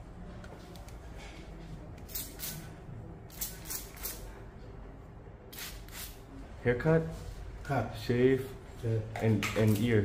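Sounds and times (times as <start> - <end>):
spray bottle squirting: 2.1 - 2.7, 3.3 - 4.2, 5.5 - 6.2.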